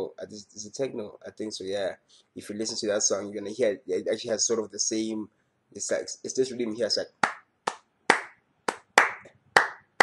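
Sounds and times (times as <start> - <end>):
hand claps in syncopated rhythm: 7.2 - 10.0.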